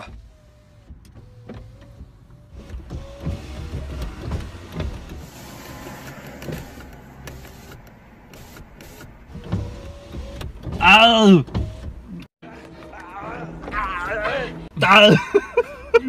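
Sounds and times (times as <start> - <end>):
car cabin rumble: 0.0 - 12.3.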